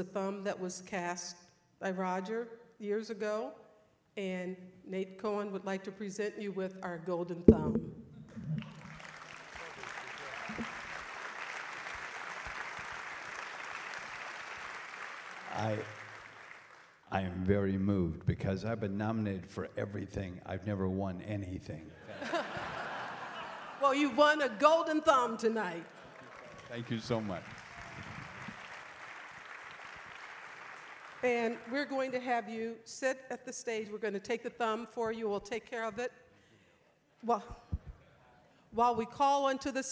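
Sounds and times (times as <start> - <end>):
low thumps: 7.5 - 9.1
audience applauding: 8.4 - 17.0, 25.8 - 31.7.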